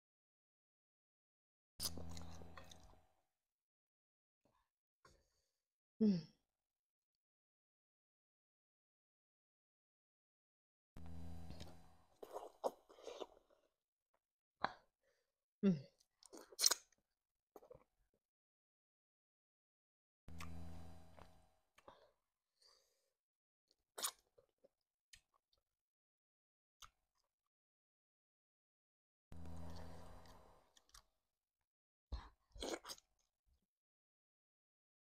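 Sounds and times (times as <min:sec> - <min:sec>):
crunchy wet chewing: 0:01.8 - 0:02.9
slurp: 0:01.8 - 0:02.9, 0:32.6 - 0:33.1
wet mouth smacks while eating: 0:16.6 - 0:16.9.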